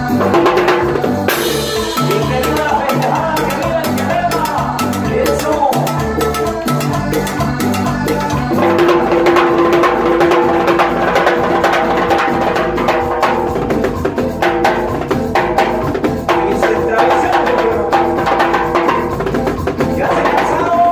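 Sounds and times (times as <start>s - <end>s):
bass line: 0.0s - 20.9s
keyboard: 0.0s - 20.9s.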